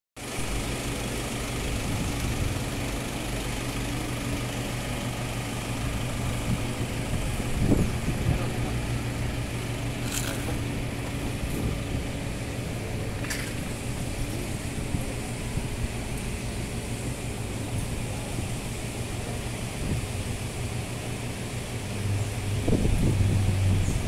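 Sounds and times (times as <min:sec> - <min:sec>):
engine idling: 0:00.2 - 0:24.0.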